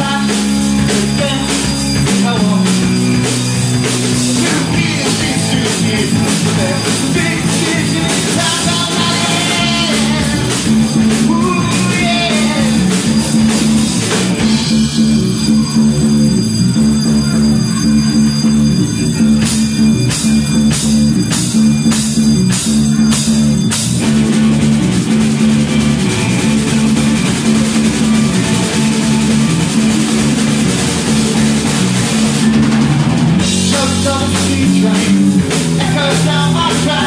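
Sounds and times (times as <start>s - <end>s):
live rock band instrumental: 0.0s - 37.0s.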